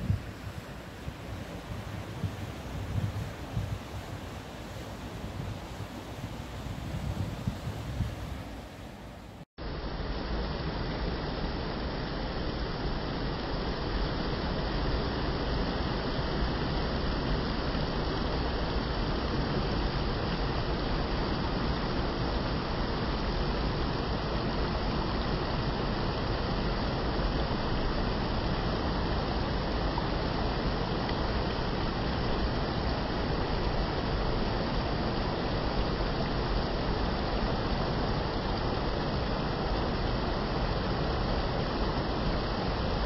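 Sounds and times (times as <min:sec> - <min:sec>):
wind on microphone: 0:00.0 - 0:09.4
stream water rushing over rocks: 0:00.0 - 0:43.0.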